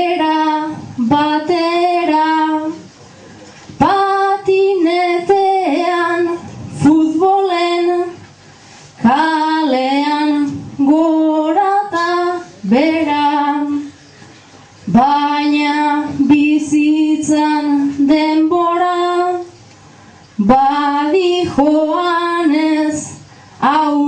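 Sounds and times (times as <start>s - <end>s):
person singing unaccompanied: 0.0s - 2.9s, 3.8s - 8.2s, 9.0s - 14.0s, 14.9s - 19.6s, 20.4s - 24.0s.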